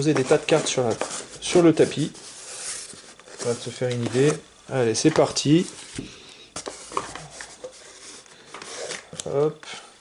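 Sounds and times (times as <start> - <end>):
soft rustling: 0.0 - 9.0.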